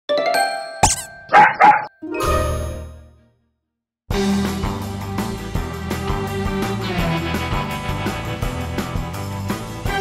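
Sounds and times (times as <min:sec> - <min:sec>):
dog barks: 0:01.3 - 0:01.9.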